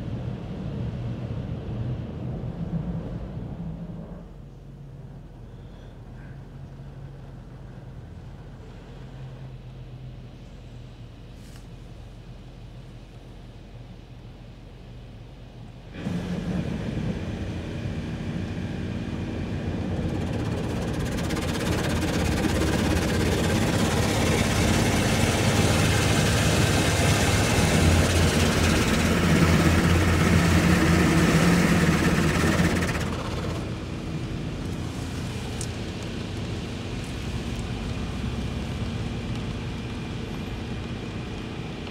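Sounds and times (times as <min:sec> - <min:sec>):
low motor hum: 0:14.9 - 0:41.9
car wash rushing hiss: 0:15.9 - 0:41.8.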